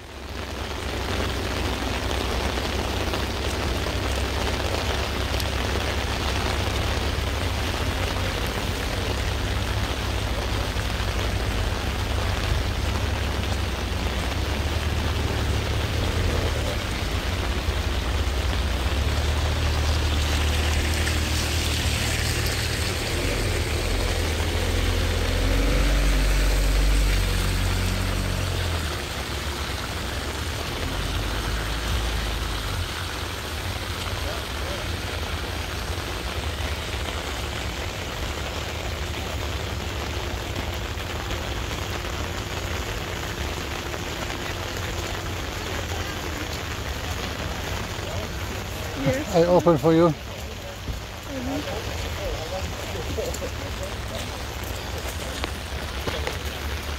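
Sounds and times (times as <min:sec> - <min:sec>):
rain falling: 0:00.0 - 0:56.9.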